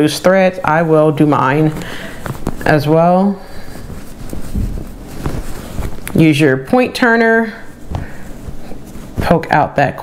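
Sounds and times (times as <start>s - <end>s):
fabric rustling: 0.2s - 10.0s.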